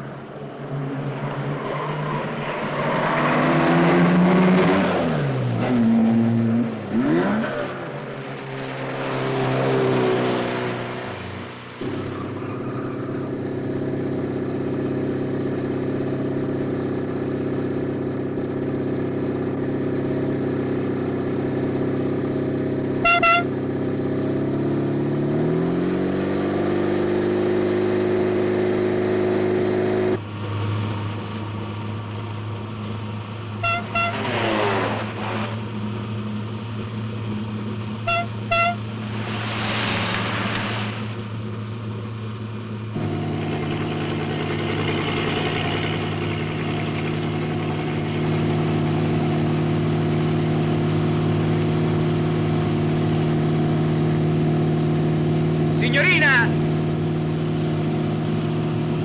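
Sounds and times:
car engine running: 10.7s - 25.2s, 28.0s - 59.0s
car horn toots: 23.0s - 23.5s, 33.6s - 34.4s, 38.0s - 38.9s.

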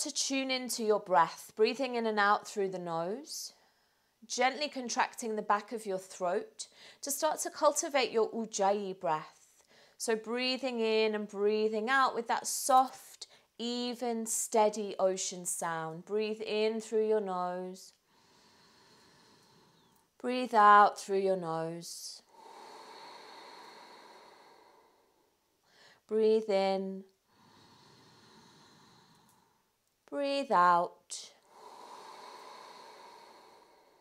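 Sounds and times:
breathing in through the nose: 18.1s - 20.0s, 22.3s - 26.0s, 27.3s - 29.6s, 31.4s - 34.0s
soft breath exhalation through nose: 18.1s - 20.0s, 31.4s - 34.0s.

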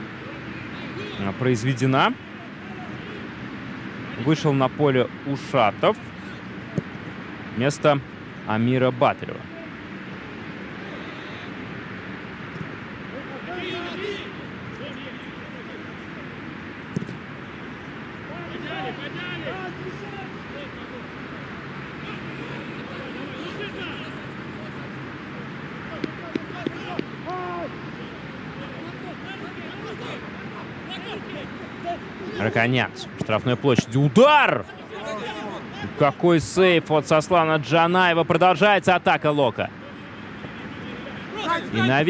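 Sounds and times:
players shouting: 0.0s - 7.2s, 8.6s - 42.0s.

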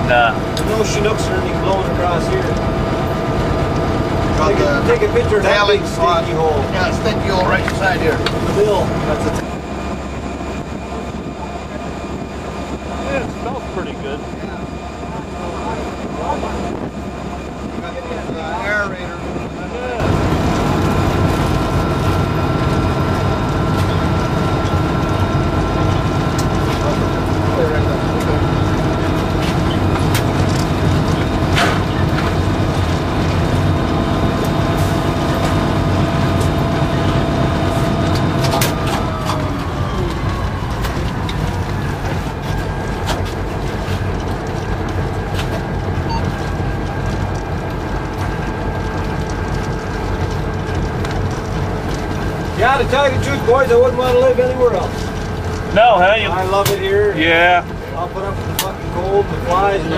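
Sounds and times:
diesel locomotive engine drone: 0.0s - 59.9s
wheel-on-rail rumble: 0.0s - 59.9s.

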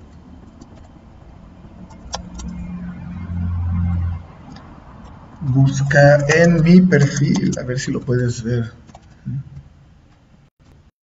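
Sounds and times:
low engine drone: 0.0s - 8.0s.

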